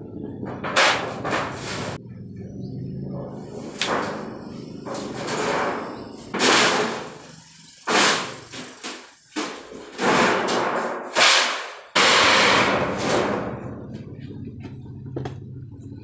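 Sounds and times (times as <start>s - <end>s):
metal sheet flexing and rattling: 0.0s - 2.0s, 3.1s - 16.0s.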